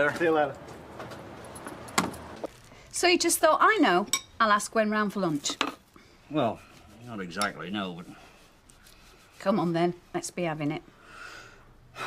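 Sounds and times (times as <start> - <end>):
street noise hiss: 0.0 - 5.3
front door clicking shut: 1.1 - 2.4.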